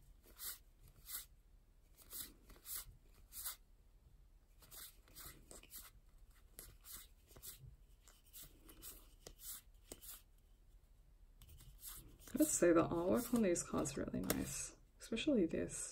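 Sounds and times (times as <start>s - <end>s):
cards sliding swishes: 0.2s - 1.3s, 1.9s - 3.6s, 4.6s - 10.3s, 11.4s - 14.5s.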